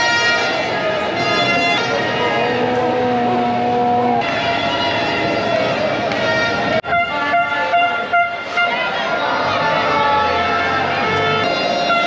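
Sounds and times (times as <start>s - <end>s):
horn short blasts: 0.0s - 9.0s, 10.2s - 12.0s
busy street noise: 0.0s - 12.0s.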